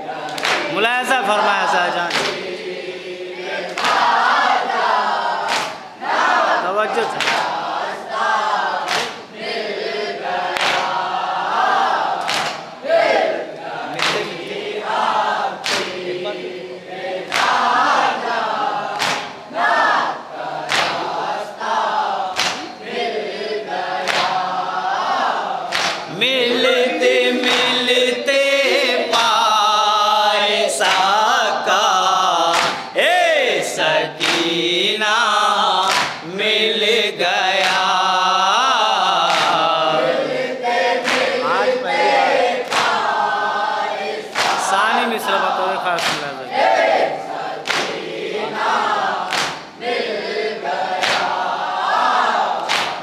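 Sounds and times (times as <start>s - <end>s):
men chanting in chorus: 0.0s - 53.0s
hands slapping chests: 0.2s - 0.7s, 2.1s - 2.4s, 3.7s - 4.1s, 5.5s - 5.8s, 7.1s - 7.6s, 8.9s - 9.2s, 10.5s - 11.0s, 12.2s - 12.7s, 13.9s - 14.6s, 15.6s - 16.0s, 17.3s - 17.7s, 19.0s - 19.4s, 20.7s - 21.1s, 22.3s - 22.7s, 24.0s - 24.4s, 25.7s - 26.1s, 30.8s - 31.2s, 32.5s - 32.9s, 34.2s - 34.5s, 35.9s - 36.3s, 37.6s - 37.9s, 39.2s - 39.8s, 41.0s - 41.4s, 42.6s - 43.0s, 44.3s - 44.6s, 46.0s - 46.4s, 47.6s - 48.0s, 49.3s - 49.8s, 51.0s - 51.4s, 52.6s - 53.0s.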